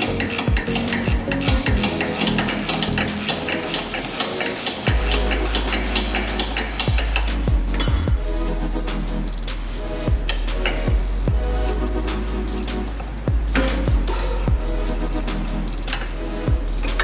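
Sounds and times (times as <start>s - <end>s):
spanners clinking and scraping: 0.0s - 8.1s
electronic music with bass beat: 0.0s - 17.0s.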